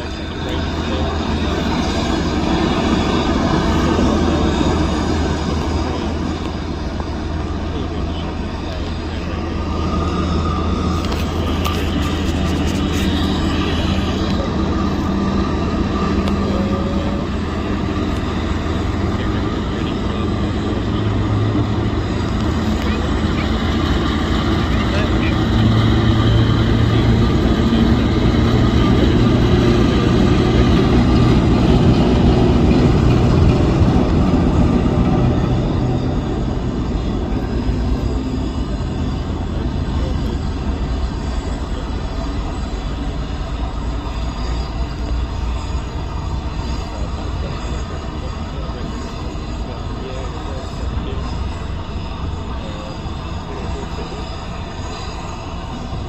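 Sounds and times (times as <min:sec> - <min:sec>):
diesel locomotive engine drone: 0:00.0 - 0:56.0.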